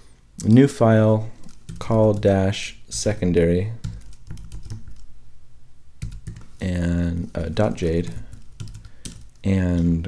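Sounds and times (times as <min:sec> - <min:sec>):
typing on computer keyboard: 0:01.4 - 0:02.3, 0:03.8 - 0:05.1, 0:06.0 - 0:06.6, 0:08.0 - 0:09.5.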